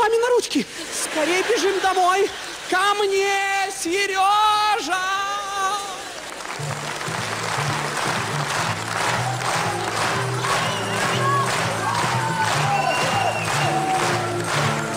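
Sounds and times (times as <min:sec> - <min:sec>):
audience applauding: 0:05.7 - 0:14.9.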